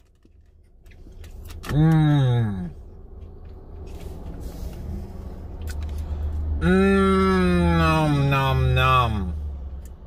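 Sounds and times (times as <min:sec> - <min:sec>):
low rumble inside car: 0:00.0 - 0:10.0
man's drawn-out vocal sound: 0:06.6 - 0:09.4.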